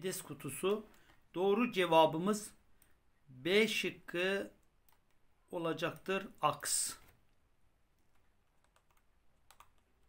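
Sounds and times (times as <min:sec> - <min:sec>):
computer keyboard clicks: 0:08.0 - 0:10.0.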